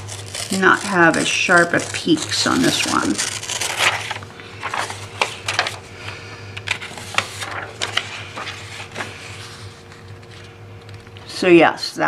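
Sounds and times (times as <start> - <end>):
steady low hum: 0.0 - 12.0
paper rustling and tapping: 3.5 - 9.2.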